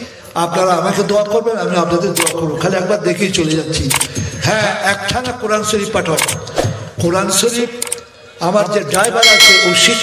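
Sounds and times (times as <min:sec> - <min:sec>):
man preaching into a microphone: 0:00.0 - 0:10.0.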